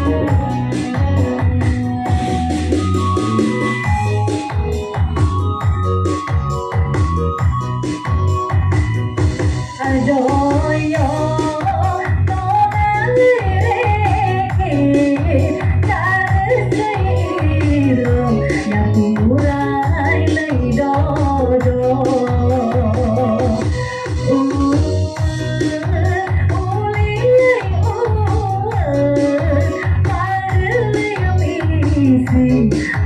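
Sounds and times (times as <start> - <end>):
woman singing into a microphone: 0.0 - 2.1, 9.7 - 33.0
electronic keyboard accompaniment: 0.0 - 33.0
low beat: 0.0 - 33.0.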